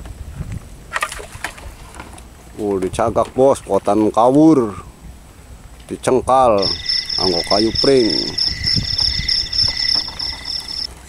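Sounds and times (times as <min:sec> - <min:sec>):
insects chirping in a trill: 0:06.4 - 0:10.9.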